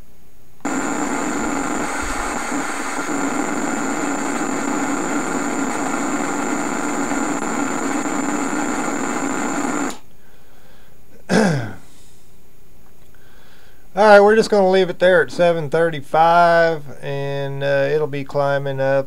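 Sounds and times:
tesla coil electrical buzz: 0:00.6 - 0:10.0
thin high whine: 0:00.6 - 0:10.0
low hum: 0:00.7 - 0:09.9.

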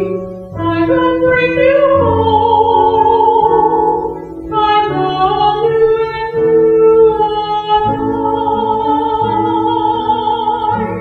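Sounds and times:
instrumental accompaniment: 0:00.0 - 0:11.0
woman singing a hymn: 0:00.0 - 0:11.0.

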